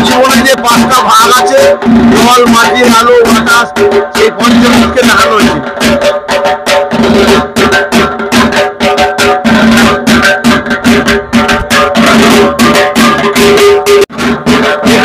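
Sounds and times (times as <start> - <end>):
pitched tones: 0.0 - 14.1
drums beaten with sticks: 0.0 - 15.0.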